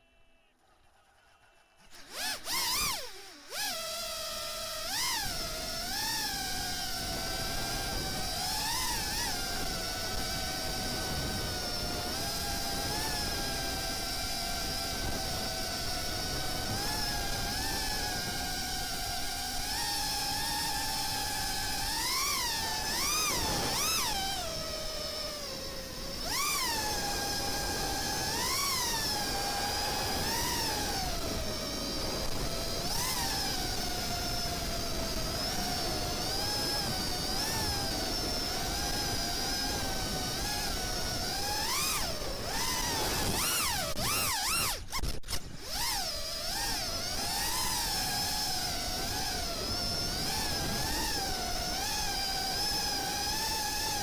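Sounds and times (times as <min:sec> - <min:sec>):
drone motors whining: 0:00.0 - 0:54.0.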